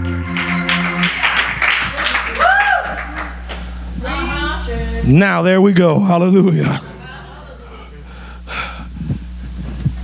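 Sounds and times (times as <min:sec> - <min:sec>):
man's sharp intake of breath: 0:07.6 - 0:09.5.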